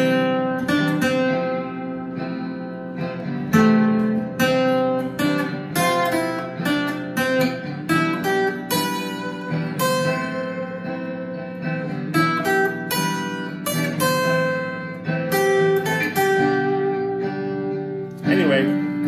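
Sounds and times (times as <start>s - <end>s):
acoustic guitar melody: 0.0s - 19.0s.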